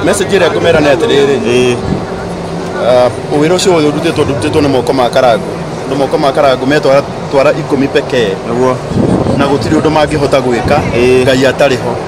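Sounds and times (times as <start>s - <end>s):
man talking: 0.0s - 1.9s, 2.7s - 12.0s
steady low hum: 0.0s - 12.0s.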